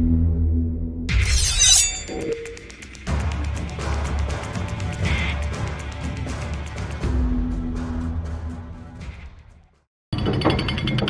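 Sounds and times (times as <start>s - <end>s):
glass shattering: 1.2s - 2.4s.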